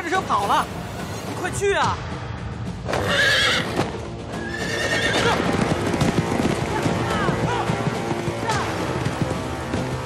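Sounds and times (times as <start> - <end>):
film score music: 0.0 - 10.0
horse whinnying: 2.9 - 5.6
galloping hooves: 2.9 - 10.0.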